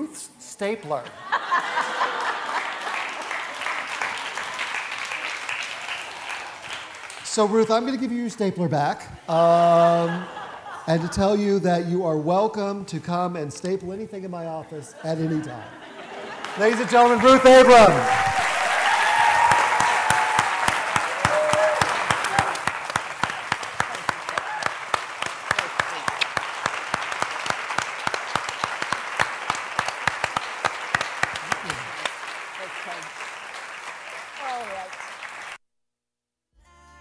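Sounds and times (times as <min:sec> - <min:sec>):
audience applauding: 0:01.4 - 0:08.0, 0:16.1 - 0:35.6.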